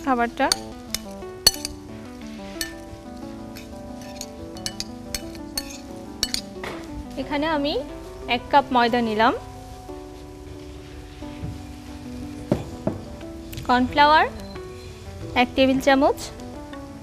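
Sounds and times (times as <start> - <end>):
soft background music: 0.0 - 17.0
metal spoon scraping glass bowl: 0.5 - 1.8, 3.6 - 6.5.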